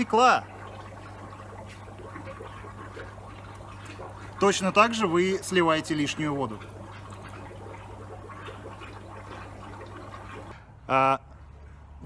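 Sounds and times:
water flowing from siphon tube: 0.0s - 10.6s
low steady hum: 0.0s - 12.0s.

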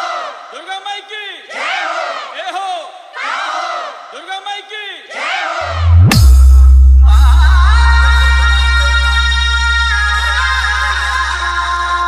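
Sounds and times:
crowd chanting: 0.0s - 0.6s, 1.4s - 4.2s, 5.0s - 6.1s.

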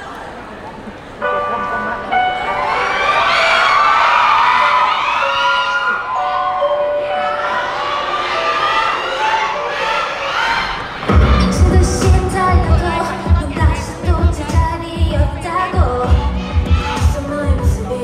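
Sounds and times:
audience screaming and cheering: 2.0s - 18.0s
pop song over speakers: 11.0s - 18.0s.

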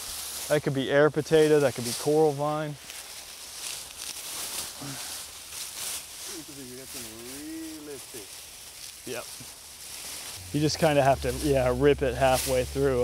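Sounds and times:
vines rustling and tearing: 1.3s - 13.0s.

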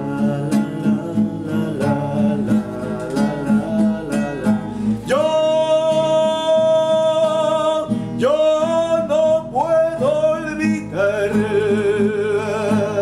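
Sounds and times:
man singing long held notes: 0.0s - 13.0s
plucked and strummed guitar: 0.0s - 13.0s.

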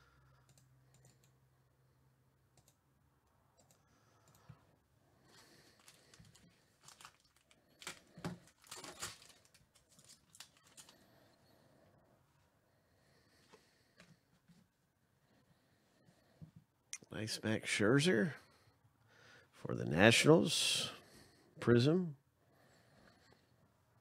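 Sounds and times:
foil card pack crinkling: 5.4s - 11.0s.

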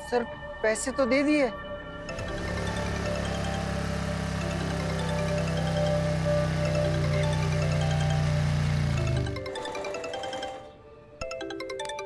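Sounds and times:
steady low drone: 1.8s - 9.4s.

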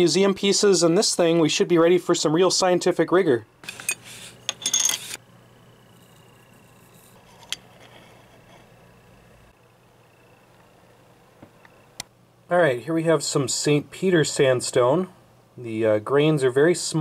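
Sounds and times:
faint steady hum: 0.0s - 17.0s
clinking: 3.6s - 5.2s.

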